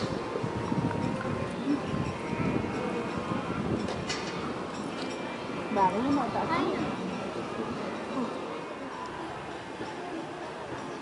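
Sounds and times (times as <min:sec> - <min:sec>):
murmur of distant voices: 0:00.0 - 0:11.0
outdoor background noise: 0:00.0 - 0:11.0.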